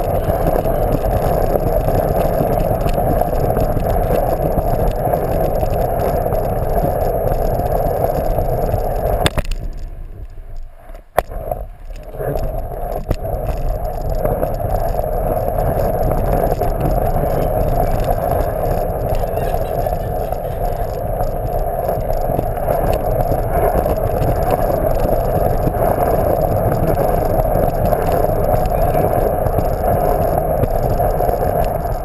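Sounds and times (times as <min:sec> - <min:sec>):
plastic wheels rolling on wood floor: 0:00.0 - 0:32.0.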